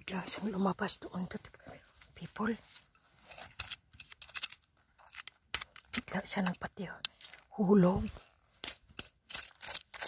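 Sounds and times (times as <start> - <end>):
metal rod scraping gravelly soil: 8.0 - 10.0.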